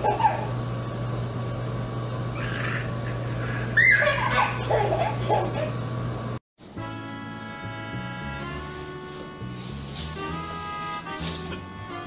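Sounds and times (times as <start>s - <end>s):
steady low hum: 0.0s - 6.4s.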